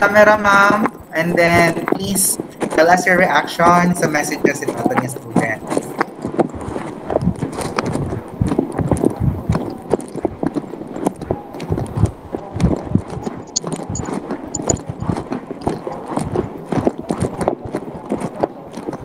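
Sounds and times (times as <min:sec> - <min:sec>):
rapid knocking and clattering: 0:00.0 - 0:19.0.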